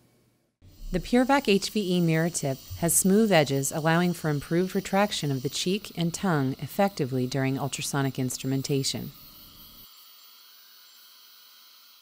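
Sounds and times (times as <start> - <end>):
high-pitched hiss: 0.7 - 12.0
thin steady tones: 0.7 - 12.0.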